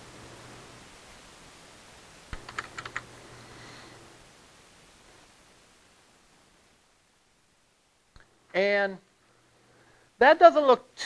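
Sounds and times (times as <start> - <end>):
computer keyboard keystrokes: 2.3 - 3.1.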